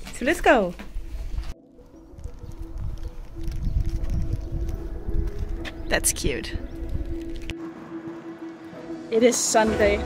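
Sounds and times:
wind rumbling on microphone: 0.4 - 7.6.

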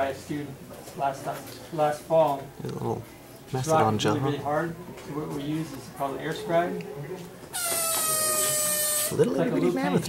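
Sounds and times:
pneumatic air scribe buzzing: 7.5 - 9.2.

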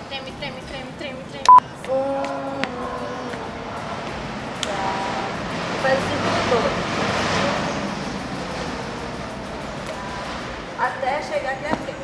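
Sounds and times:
outdoor background hiss and rumble: 0.0 - 12.0.

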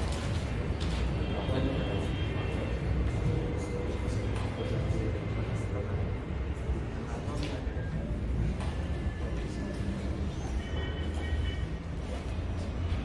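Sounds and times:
faint murmuring voices: 0.0 - 13.0.

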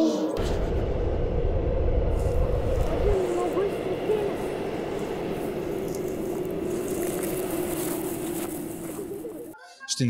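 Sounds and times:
rushing noise: 0.4 - 9.3.

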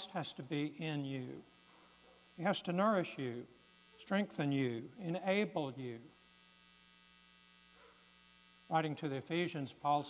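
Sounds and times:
faint electrical mains hum: 0.0 - 10.0.

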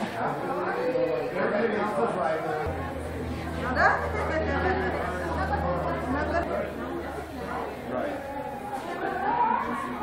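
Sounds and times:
chatter of many voices: 0.0 - 10.0
low hum: 2.7 - 8.8.

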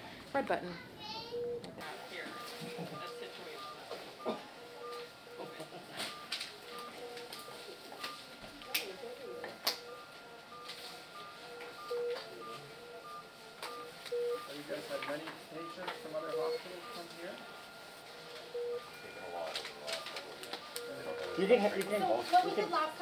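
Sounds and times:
faint voices: 0.3 - 23.0
electronic alarm beeps: 2.2 - 23.0.

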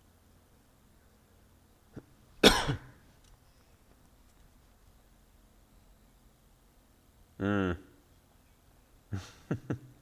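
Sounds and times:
person coughing: 2.4 - 3.0.

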